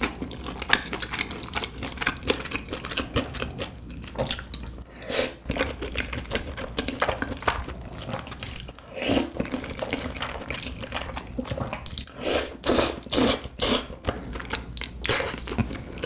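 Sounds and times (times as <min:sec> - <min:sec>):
wet chewing and smacking: 0:00.0 - 0:16.0
louder eating bursts: 0:12.0 - 0:14.0.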